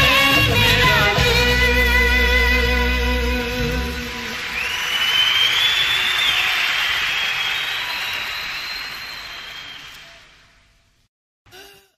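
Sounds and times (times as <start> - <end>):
audience cheering: 3.9 - 10.6
whistle: 4.4 - 10.3.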